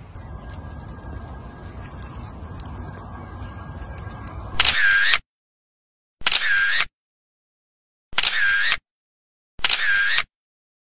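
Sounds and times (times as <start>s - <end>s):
camera shutter clicks: 6.2s - 6.9s, 8.2s - 8.8s, 9.6s - 10.3s.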